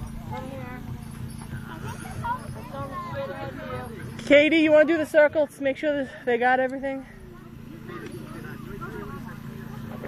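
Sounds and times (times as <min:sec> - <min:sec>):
children's voices and chatter: 0:00.0 - 0:10.0
steady rhythmic low knocking: 0:00.0 - 0:10.0.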